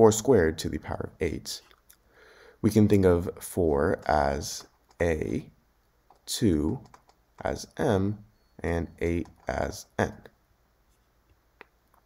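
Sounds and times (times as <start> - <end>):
man speaking: 0.0 - 1.8, 2.6 - 5.6, 6.2 - 10.4
stylus tapping a tablet: 9.0 - 9.6.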